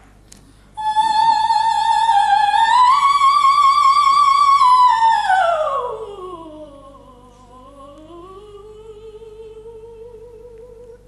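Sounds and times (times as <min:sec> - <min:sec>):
soprano singing softly: 0:00.8 - 0:11.0.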